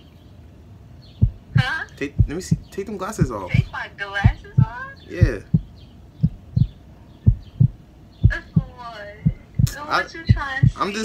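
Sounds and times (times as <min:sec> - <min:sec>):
deep short thumps: 0:01.2 - 0:10.8
person speaking: 0:01.5 - 0:05.6.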